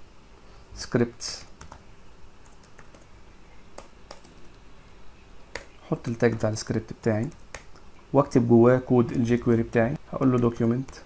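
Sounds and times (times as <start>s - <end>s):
keyboard keystrokes clicking: 1.6s - 1.8s, 3.8s - 4.4s.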